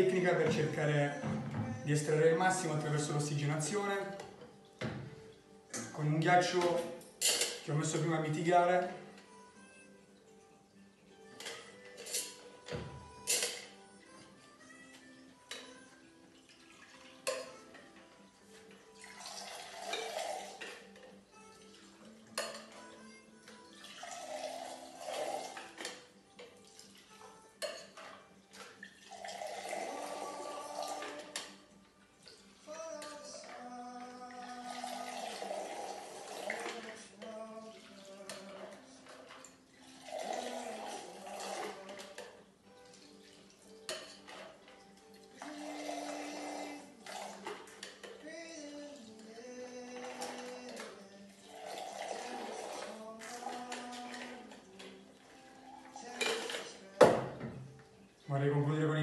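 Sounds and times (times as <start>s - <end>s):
background music: 0.0s - 59.0s
clinks of metal and ice: 7.1s - 8.0s, 11.4s - 13.8s, 56.0s - 56.8s
liquid pouring into metal tin: 18.7s - 57.4s.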